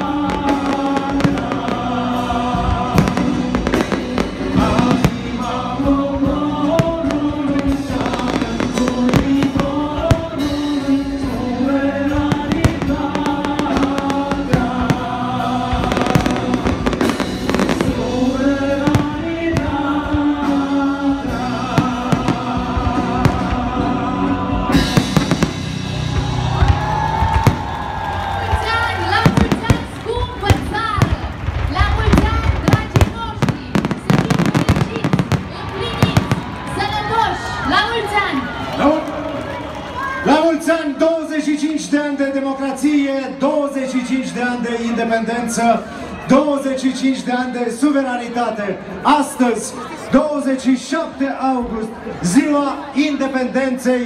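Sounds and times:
fireworks bangs and crackles: 0.0 - 24.0, 24.6 - 37.9
loud music with held notes: 0.0 - 28.0
crowd voices: 0.0 - 54.0.

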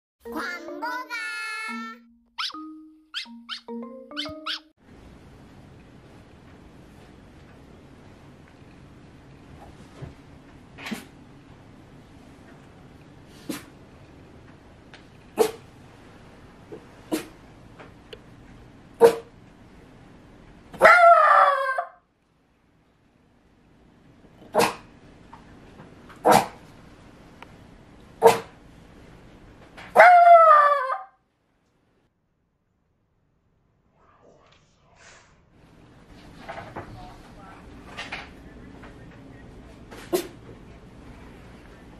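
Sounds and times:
held synth notes: 0.2 - 4.7
sharp quick squeaks: 2.4 - 2.6, 3.2 - 4.7
dog barking: 3.2 - 3.6, 4.2 - 4.6, 19.0 - 19.3, 20.8 - 22.0, 28.2 - 28.5, 30.0 - 31.1.

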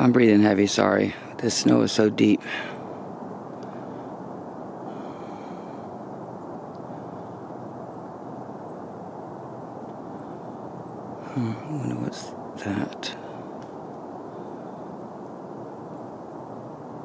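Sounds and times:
faint high whine: 0.0 - 17.0
steady low rumble: 0.0 - 17.0.

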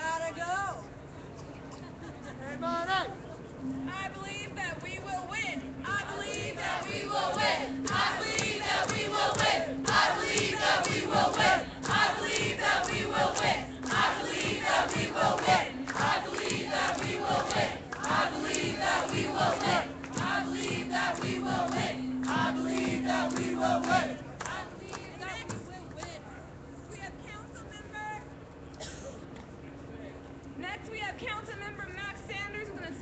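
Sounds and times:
crowd chanting in unison: 6.1 - 24.8.

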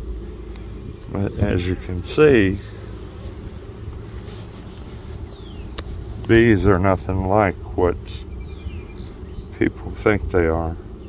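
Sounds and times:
honeybees humming: 0.0 - 11.0.

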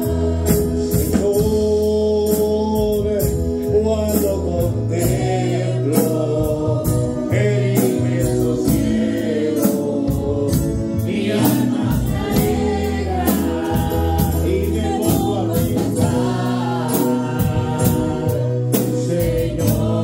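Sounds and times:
man singing into a microphone: 0.0 - 11.7, 13.4 - 20.0
drum beat with cymbals: 0.0 - 20.0
keyboard: 0.0 - 20.0
women's backing vocals: 11.1 - 20.0.

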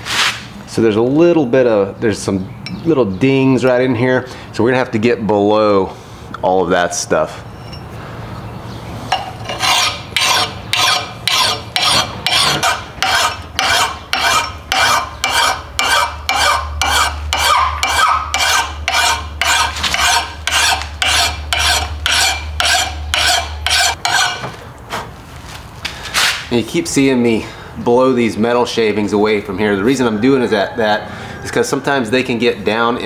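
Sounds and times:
file rasping on axe edge: 9.5 - 24.4.

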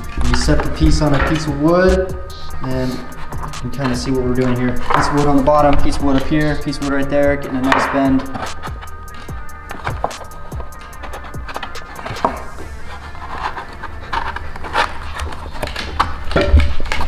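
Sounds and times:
background music: 0.0 - 17.0.

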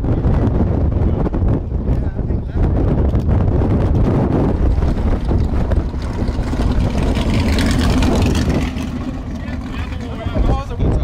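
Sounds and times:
race car engines: 0.0 - 11.0
wind buffeting microphone: 0.0 - 11.0.

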